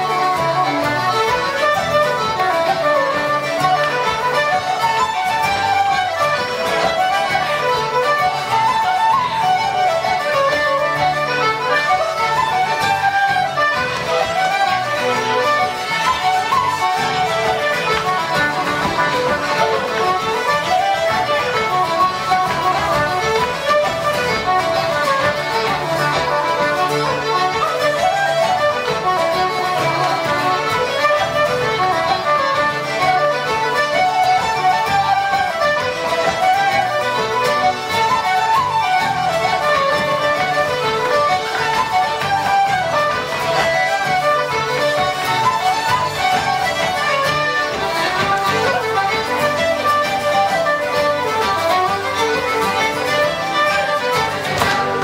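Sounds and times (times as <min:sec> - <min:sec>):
quick running melody: 0:00.7 - 0:55.0
steady guitar chords: 0:15.8 - 0:27.4, 0:51.4 - 0:55.0.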